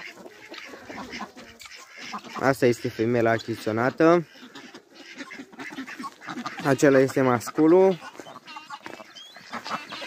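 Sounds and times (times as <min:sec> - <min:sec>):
faint fowl calls: 0:00.0 - 0:10.0.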